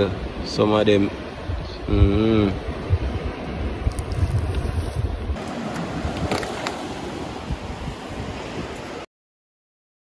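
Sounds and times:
wind buffeting microphone: 0:00.0 - 0:09.0.

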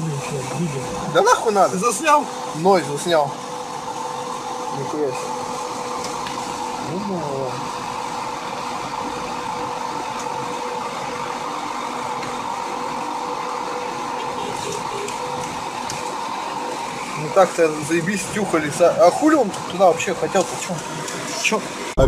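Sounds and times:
car engine and cabin noise: 0:00.0 - 0:22.0
constant hum: 0:00.0 - 0:22.0.

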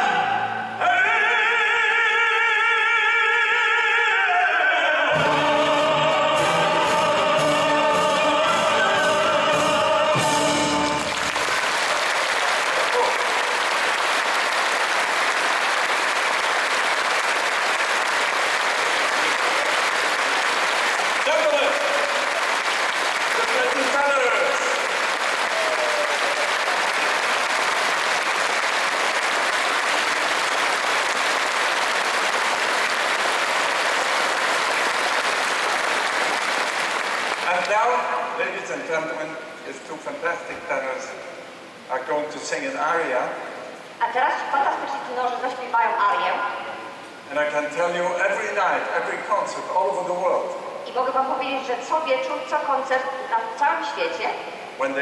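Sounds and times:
audience applauding: 0:10.8 - 0:38.1.

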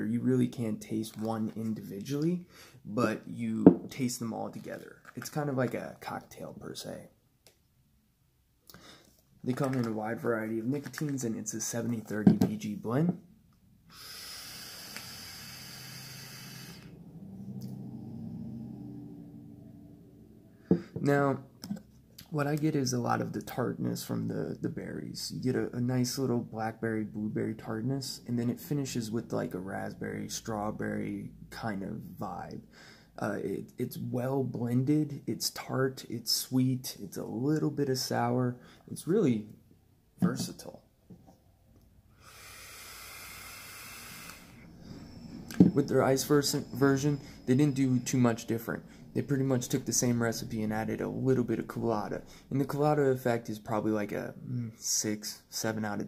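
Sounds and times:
vape drawing hiss: 0:13.9 - 0:16.9, 0:42.2 - 0:48.5
person exhaling vapour: 0:13.9 - 0:17.0, 0:42.2 - 0:45.2.

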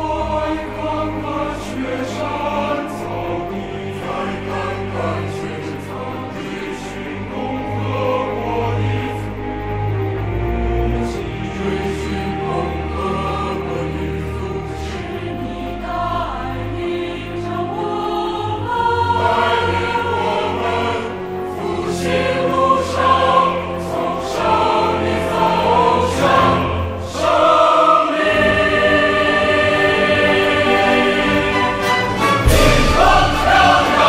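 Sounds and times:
instrumental accompaniment: 0:00.0 - 0:34.0
large choir singing: 0:00.0 - 0:34.0.

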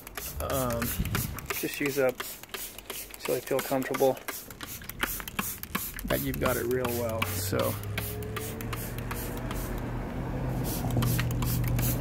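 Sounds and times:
spray bottle squirts: 0:00.0 - 0:09.8, 0:10.6 - 0:12.0.

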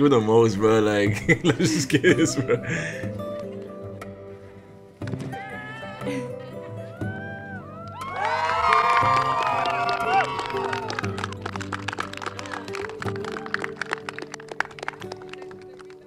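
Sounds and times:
soft background music: 0:00.0 - 0:16.0
crowd cheering: 0:06.9 - 0:15.8
crowd applauding: 0:07.8 - 0:16.0.

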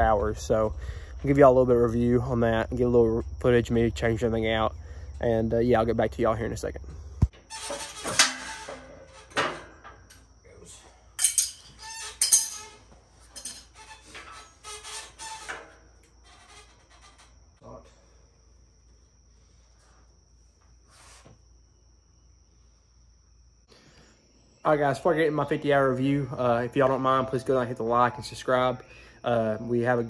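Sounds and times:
metal tools clinking on mower: 0:11.2 - 0:13.8.

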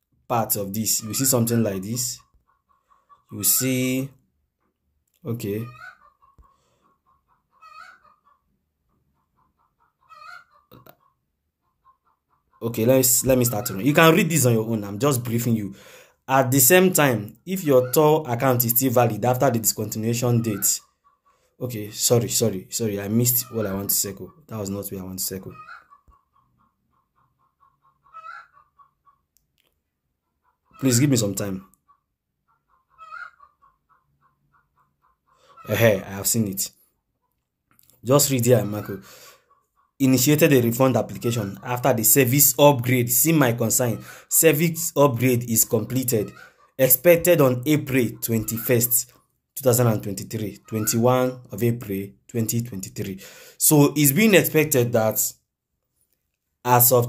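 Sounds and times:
chicken clucking: 0:00.8 - 0:03.8, 0:05.4 - 0:14.8, 0:19.8 - 0:21.6, 0:23.1 - 0:42.0, 0:43.2 - 0:46.8, 0:47.4 - 0:51.5
faint animal calls: 0:00.9 - 0:04.0, 0:05.3 - 0:14.2, 0:20.2 - 0:21.6, 0:25.4 - 0:29.3, 0:30.2 - 0:37.4, 0:38.3 - 0:42.2, 0:45.6 - 0:46.9, 0:50.5 - 0:51.5.

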